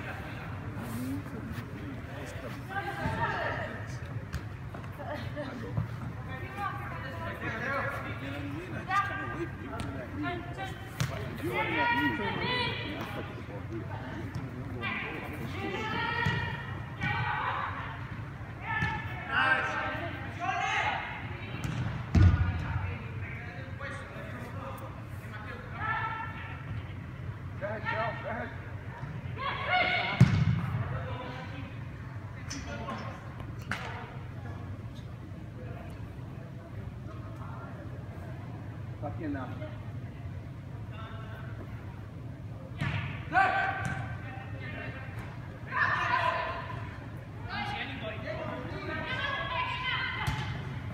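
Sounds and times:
faint hubbub of play: 0.0 - 50.9
soccer ball thud: 11.0 - 11.3, 16.2 - 16.5, 21.6 - 22.7, 30.2 - 30.7, 42.8 - 43.0.

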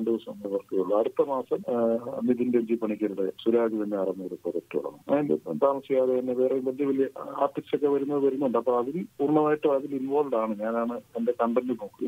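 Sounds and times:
person talking: 0.0 - 12.0.

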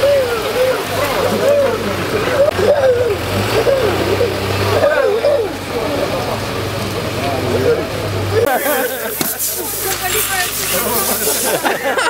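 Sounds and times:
engine idling hum: 0.0 - 12.0.

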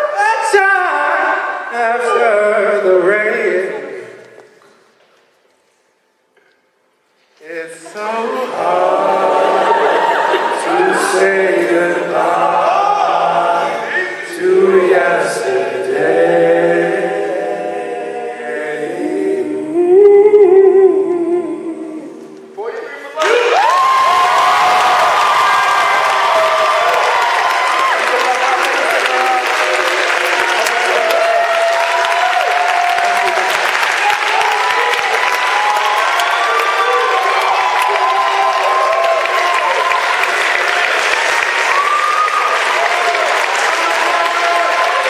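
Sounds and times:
audience applauding and cheering: 23.1 - 45.0
crowd shouts and whoops: 23.2 - 29.2, 30.4 - 45.0.

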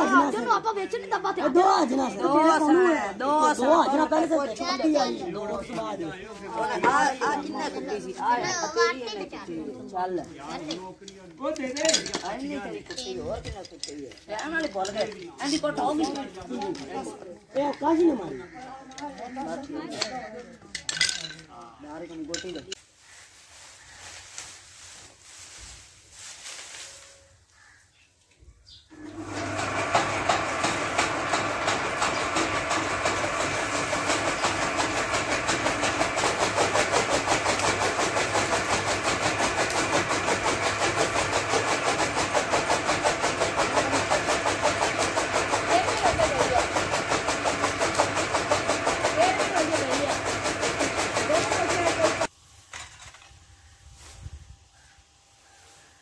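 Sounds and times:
chaff cutter chopping fodder: 28.9 - 52.3.

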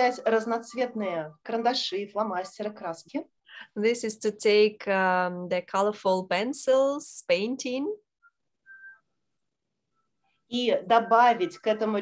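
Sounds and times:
faint high whistle-like tone: 8.2 - 10.4.

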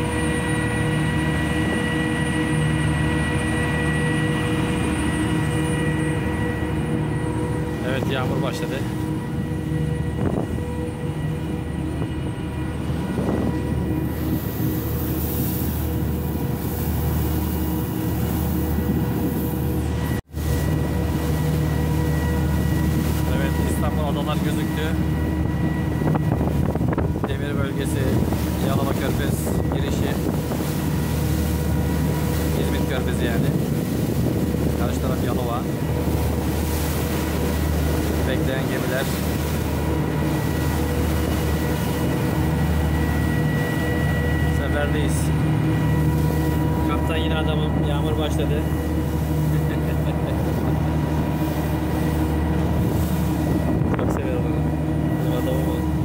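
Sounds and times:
ship diesel engines droning: 0.0 - 56.0
wind buffeting microphone: 6.2 - 56.0.

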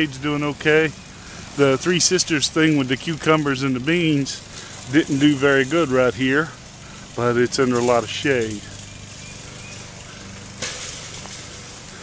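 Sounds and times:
rustling through grass and plants: 0.0 - 12.0
steady low hum: 0.0 - 12.0.

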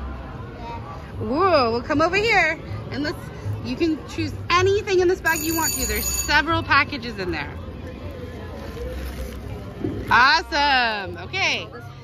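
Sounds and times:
faint distant voices: 0.0 - 12.0
low crowd rumble: 6.4 - 12.0.

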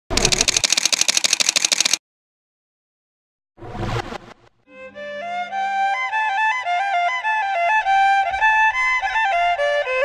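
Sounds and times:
camera shutter clicks: 0.2 - 2.0.

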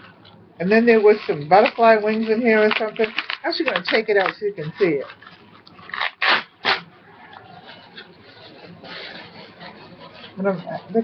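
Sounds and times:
plastic packaging crinkling: 0.0 - 10.7.

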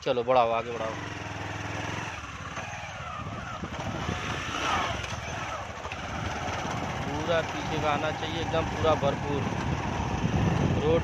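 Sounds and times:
motorcycle engine running: 0.0 - 11.0
wind noise on microphone: 2.2 - 5.3, 6.0 - 11.0.

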